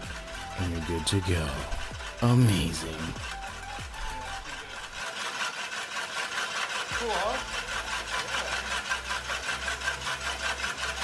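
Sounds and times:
drill motor hum: 0.0 - 11.0
mower blades scraping: 0.0 - 11.0.

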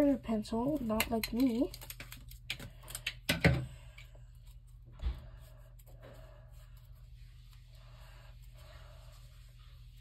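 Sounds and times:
scissors and paper handled: 0.5 - 3.1.

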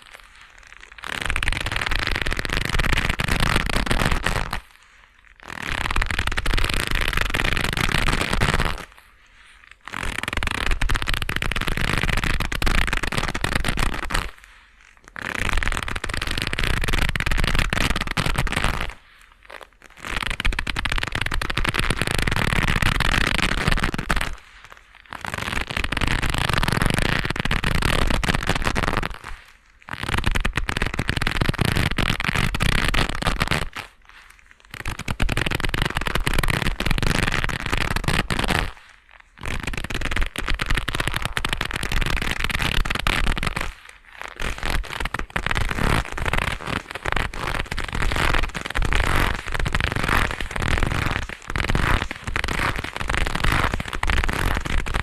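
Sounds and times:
leather gloves rubbing crackling: 0.0 - 55.0.

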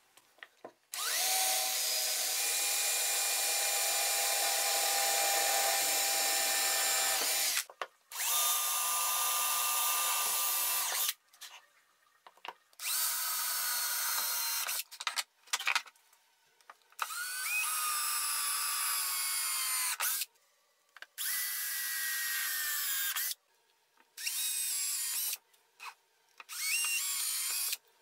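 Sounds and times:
cordless drill whining: 1.0 - 11.1, 12.8 - 14.8, 17.0 - 20.2, 21.2 - 23.4, 24.2 - 25.4, 26.5 - 27.8.

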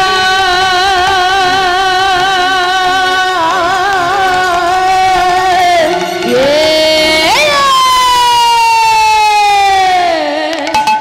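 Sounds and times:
woman singing a long note: 0.0 - 11.0.

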